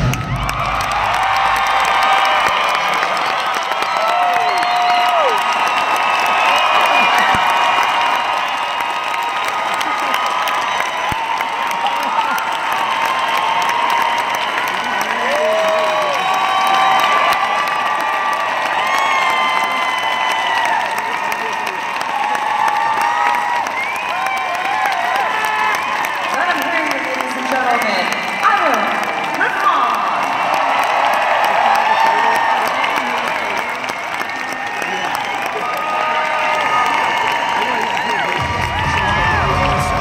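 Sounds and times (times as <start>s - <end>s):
crowd shouts and screams: 0.0s - 26.9s, 27.6s - 40.0s
crowd applauding: 0.0s - 40.0s
whistles: 23.6s - 24.2s.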